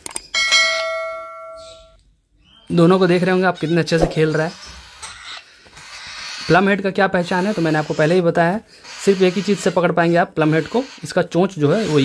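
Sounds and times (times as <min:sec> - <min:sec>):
bell ding: 0:00.4 - 0:02.0.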